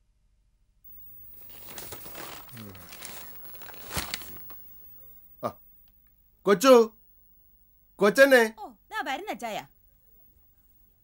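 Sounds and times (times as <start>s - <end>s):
newspaper pages rustling: 1.3s - 4.8s.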